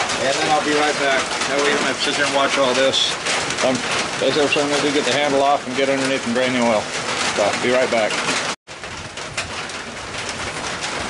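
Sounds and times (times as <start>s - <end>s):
light rain hissing: 0.0s - 11.0s.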